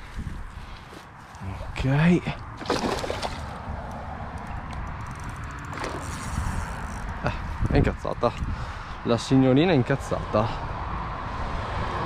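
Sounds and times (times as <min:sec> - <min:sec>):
fish splashing in water: 0:02.6 - 0:03.7.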